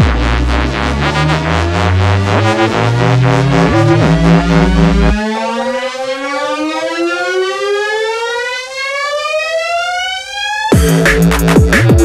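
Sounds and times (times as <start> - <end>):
drum and bass beat: 0.0 - 5.3, 10.7 - 12.0
synthesizer tone sliding upward: 0.0 - 8.8.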